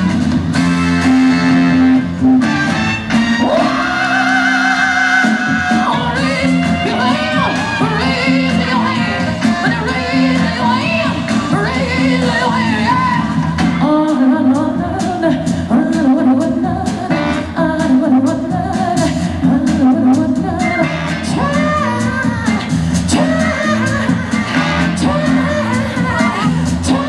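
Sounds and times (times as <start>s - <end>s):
pop song over sound system: 0.0s - 27.0s.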